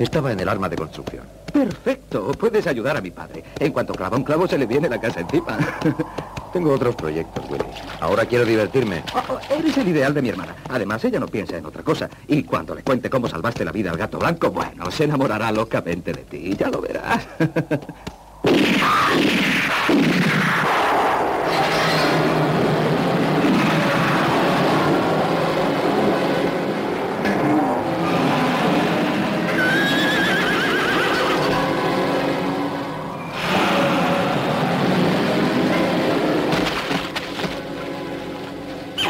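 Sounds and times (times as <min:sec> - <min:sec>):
loud chaotic din: 0:18.4 - 0:29.6, 0:33.3 - 0:37.7
horses neighing and whinnying: 0:27.2 - 0:32.1.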